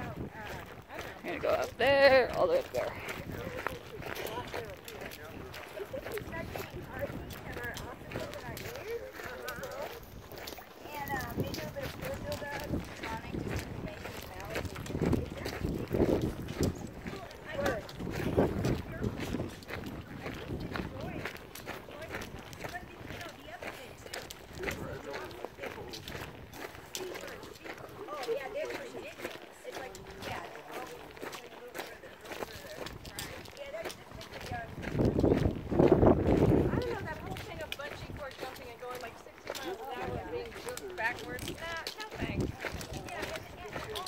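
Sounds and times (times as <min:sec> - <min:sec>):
footsteps on stony trail: 0:00.0 - 0:44.0
people talking indistinctly: 0:00.0 - 0:44.0.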